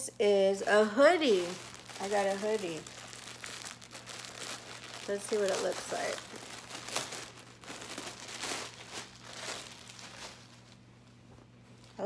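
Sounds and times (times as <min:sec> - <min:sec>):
plastic bag crinkling: 0:00.6 - 0:10.9.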